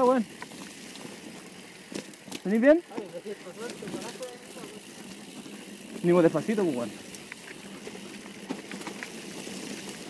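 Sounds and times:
bike tyres rolling on dirt: 0.0s - 10.0s.

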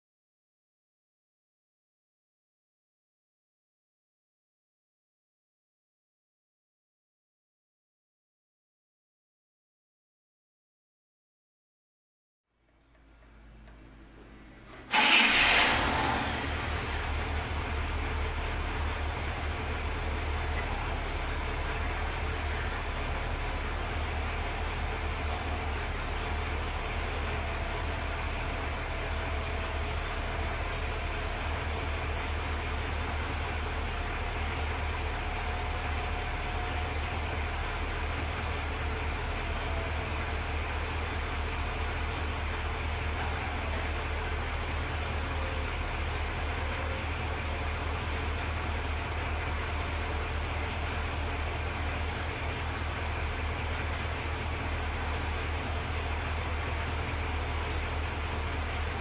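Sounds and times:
car engine idling: 12.7s - 59.0s
pump motor whine: 13.6s - 59.0s.

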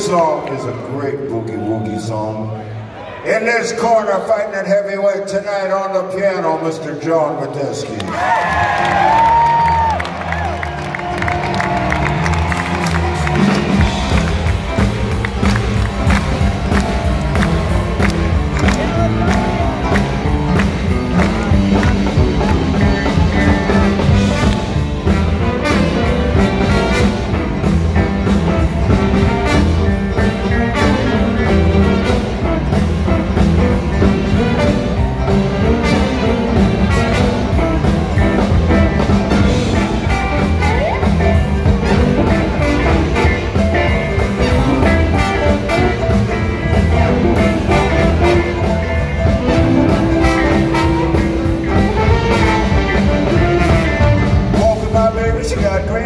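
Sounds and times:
blues band playing boogie-woogie: 8.4s - 56.0s.

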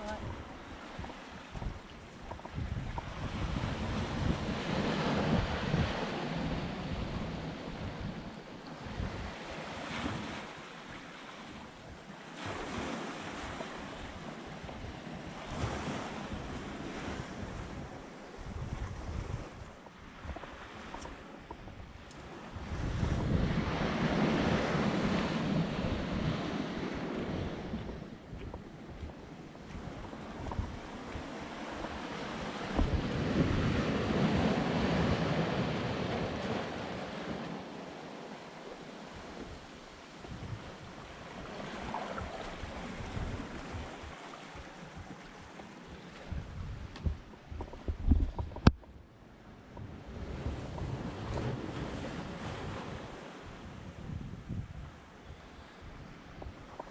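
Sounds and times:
wind buffeting microphone: 0.0s - 10.4s, 12.7s - 37.6s, 39.1s - 56.9s
small waves washing on beach: 0.0s - 56.9s.

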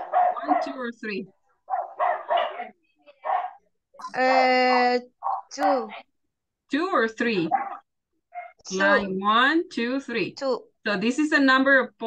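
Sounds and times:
dog barking: 0.0s - 0.8s, 1.6s - 3.6s, 5.2s - 5.6s, 7.5s - 8.6s.

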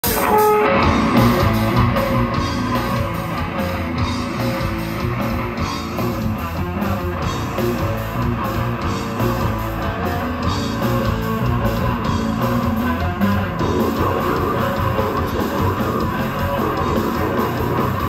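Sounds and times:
bass guitar: 0.0s - 18.0s
distorted electric guitar riffing: 0.0s - 18.0s
drums: 0.0s - 18.0s.

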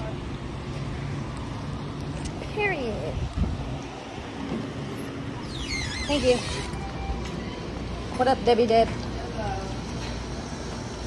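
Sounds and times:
wind buffeting microphone: 2.3s - 4.6s.

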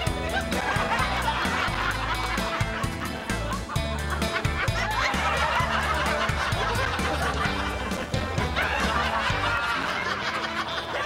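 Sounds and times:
comic music with bouncy bass: 0.0s - 10.7s.

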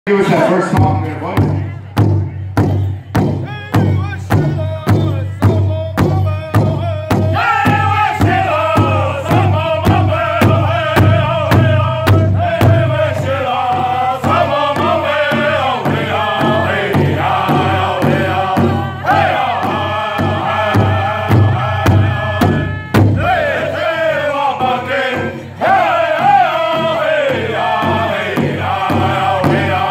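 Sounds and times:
powwow drum beating: 0.1s - 29.9s
high-pitched group singing: 7.2s - 29.9s.

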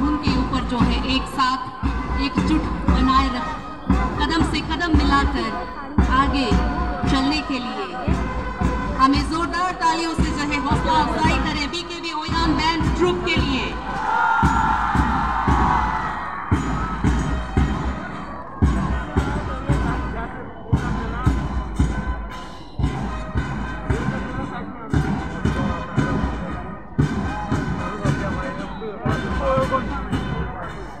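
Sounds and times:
marching drums: 0.0s - 31.0s
band music: 2.1s - 31.0s
stadium crowd cheering: 12.4s - 31.0s.

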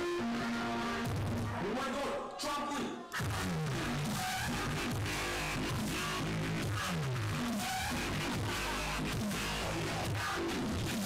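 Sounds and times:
dubstep music with distorted bass: 3.2s - 11.0s.

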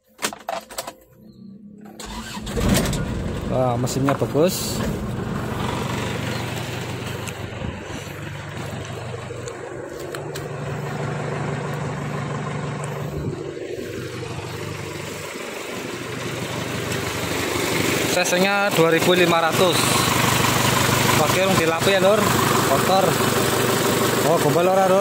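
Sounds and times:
diesel engine idling: 2.0s - 25.0s.

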